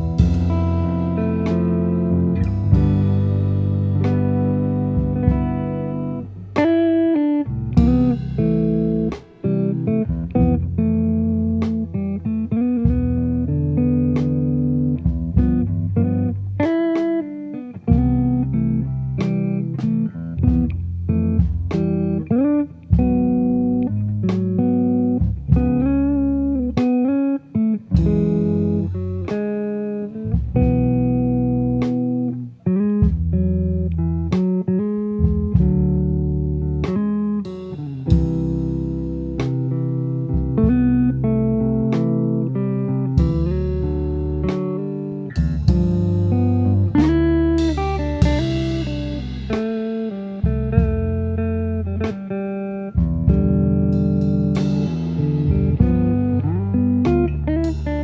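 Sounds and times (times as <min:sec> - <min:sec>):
plucked guitar over bass line: 0:00.0 - 0:58.0.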